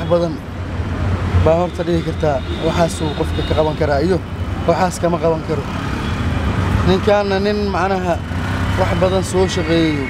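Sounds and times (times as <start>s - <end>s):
traffic engines rumbling: 0.0s - 10.0s.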